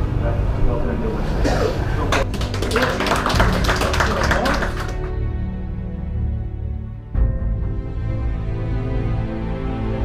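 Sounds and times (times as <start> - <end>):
background music with low drone: 0.0 - 10.0
sharp claps and taps: 2.1 - 5.2.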